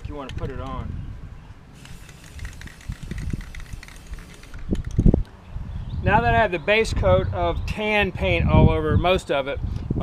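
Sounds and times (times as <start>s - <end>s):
spray paint can hissing: 1.8s - 4.9s.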